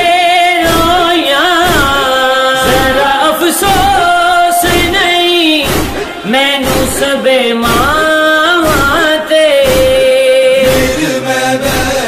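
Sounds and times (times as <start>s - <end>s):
man singing a lament: 0.0s - 12.0s.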